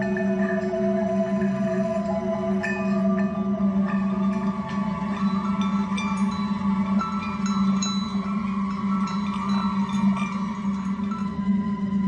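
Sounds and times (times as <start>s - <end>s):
high ringing notes: 0.0s - 12.0s
low music drone: 0.0s - 12.0s.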